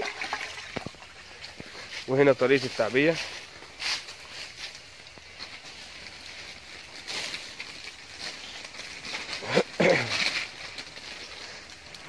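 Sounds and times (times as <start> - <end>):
soil rustling and scraping: 0.6 - 12.0.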